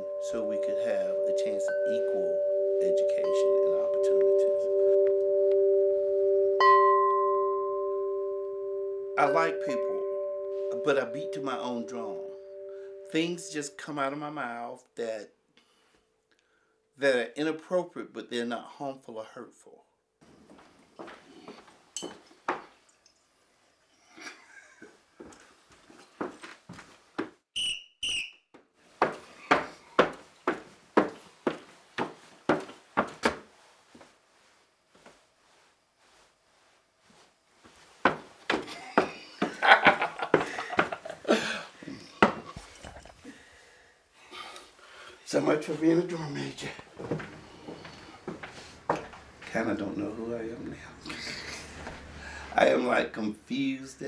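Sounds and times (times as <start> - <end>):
wind chime ringing: 0.0 - 13.7
footsteps marching on wooden floor: 25.2 - 27.4, 29.0 - 34.1, 37.6 - 41.2, 46.7 - 49.6
whistle blasts: 27.5 - 28.4.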